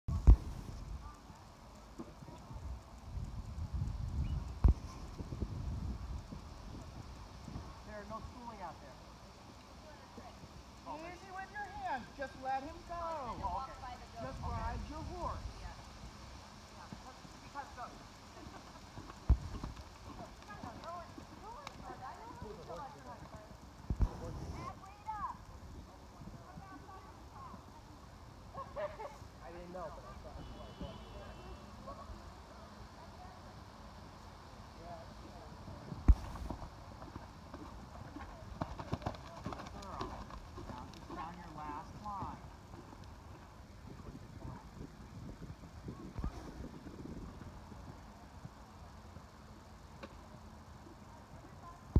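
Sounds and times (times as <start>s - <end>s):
horse hooves trotting on sand: 0.1s - 28.0s, 35.2s - 50.2s.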